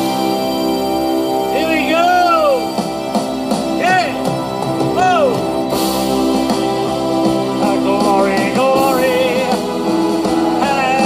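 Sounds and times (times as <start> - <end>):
backing track chords: 0.0 - 11.0
man singing into microphone: 7.6 - 9.6, 10.5 - 11.0.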